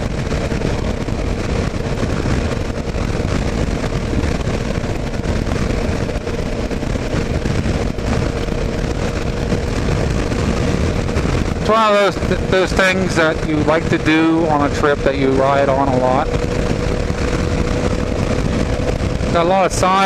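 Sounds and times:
motorcycle engine running: 0:00.0 - 0:20.0
wind buffeting on microphone: 0:00.0 - 0:20.0.

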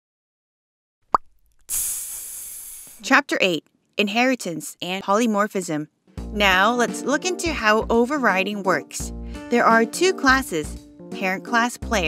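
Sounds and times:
hiss-like whoosh: 0:01.7 - 0:03.0.

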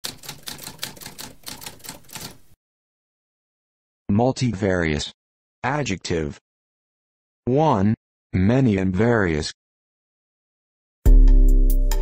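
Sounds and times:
typewriter keys typing: 0:00.0 - 0:02.5.

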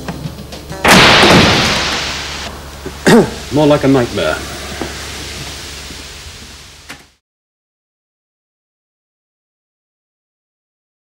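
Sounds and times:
low hum: 0:00.0 - 0:07.2
hiss from smoking lock: 0:00.9 - 0:07.2.

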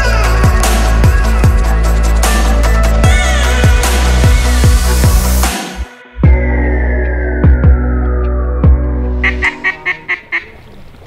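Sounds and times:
background music: 0:00.0 - 0:10.3
duck quacks: 0:09.2 - 0:10.6.

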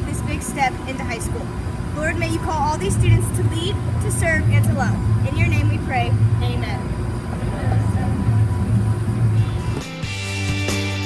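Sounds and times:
low engine rumble: 0:00.0 - 0:10.8
music: 0:09.4 - 0:11.0.

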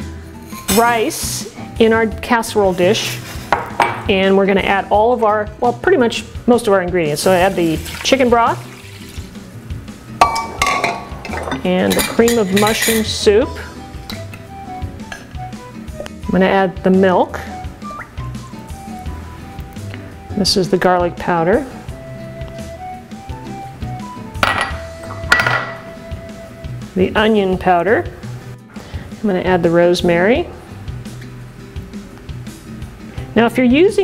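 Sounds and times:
background music: 0:00.0 - 0:34.0
glass clinking: 0:10.2 - 0:13.1, 0:24.4 - 0:25.8.

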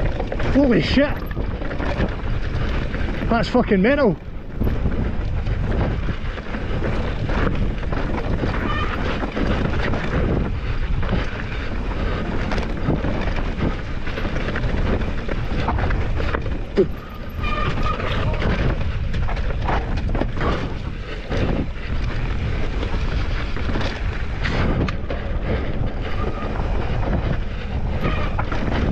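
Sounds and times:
bike rattles and knocks: 0:00.0 - 0:28.9
bike tyres on dirt and rock: 0:00.0 - 0:28.9
wind buffeting microphone: 0:00.0 - 0:28.9.

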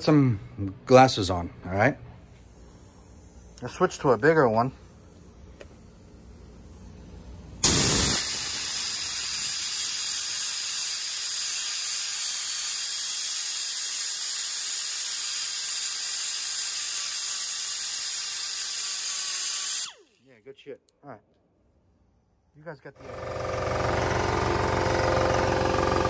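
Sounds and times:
air die grinder hissing: 0:02.4 - 0:20.3.

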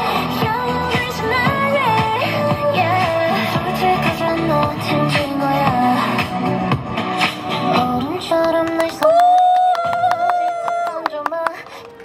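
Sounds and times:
pop song through amplifier: 0:00.0 - 0:12.0.

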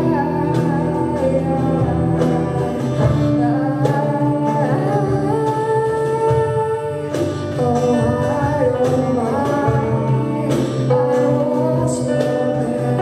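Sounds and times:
electric guitars: 0:00.0 - 0:13.0.

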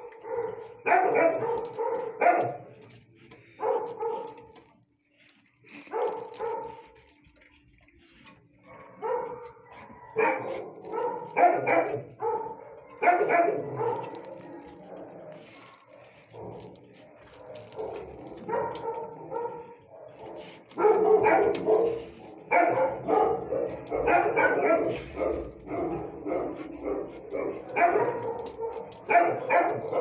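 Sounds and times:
dog barking: 0:00.0 - 0:02.7, 0:03.6 - 0:04.4, 0:05.8 - 0:06.9, 0:08.6 - 0:30.0.

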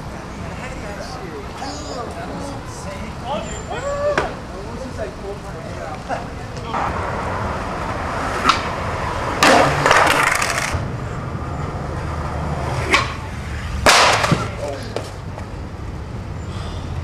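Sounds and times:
skateboard wheels rolling on concrete: 0:03.8 - 0:16.3
skateboard crash: 0:09.4 - 0:10.8, 0:13.8 - 0:14.6
skateboard tail pop: 0:09.4 - 0:10.8, 0:13.8 - 0:14.5.

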